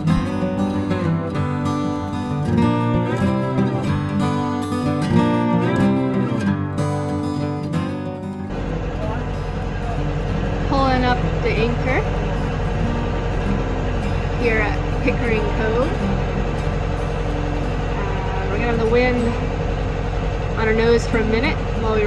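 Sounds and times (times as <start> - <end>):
boat engine droning: 0.0 - 22.0
indistinct voices: 8.5 - 22.0.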